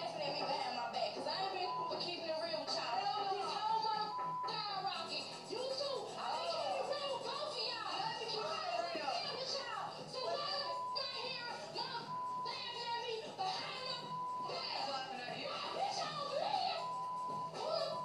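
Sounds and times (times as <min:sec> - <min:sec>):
background music: 0:00.0 - 0:18.0
short steady beeps: 0:01.6 - 0:02.1, 0:04.0 - 0:04.7, 0:10.6 - 0:11.4, 0:12.0 - 0:12.9, 0:14.0 - 0:14.9, 0:16.7 - 0:18.0.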